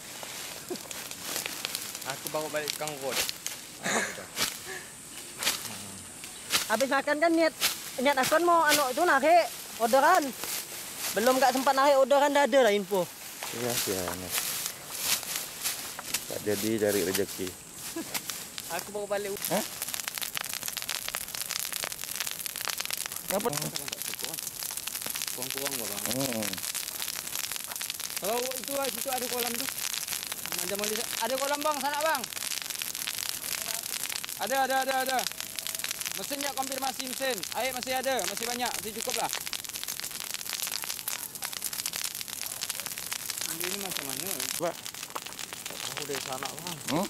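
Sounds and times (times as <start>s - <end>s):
burning brush crackling: 0.0s - 47.0s.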